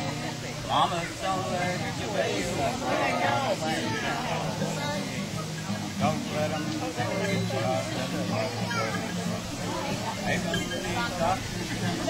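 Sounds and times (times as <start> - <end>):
children's voices: 0.0 - 5.4, 6.0 - 12.0
acoustic guitar low notes: 0.0 - 12.0
people talking: 0.0 - 12.0.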